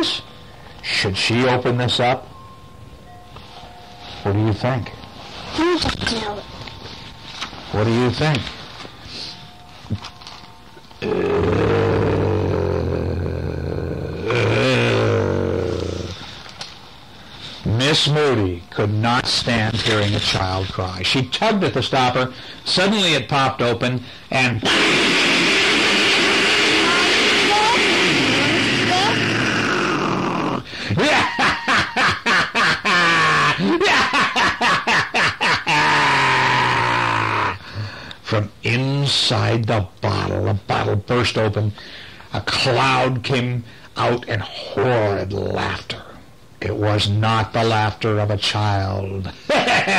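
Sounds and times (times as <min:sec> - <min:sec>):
man humming: 0:11.0 - 0:16.2
drawn-out voiced sound: 0:24.5 - 0:30.6
pulsing laugh-like mouth sounds: 0:24.7 - 0:37.6.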